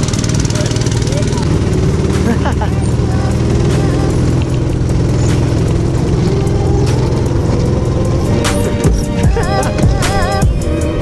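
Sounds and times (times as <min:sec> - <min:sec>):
go-kart engine running: 0:00.0 - 0:11.0.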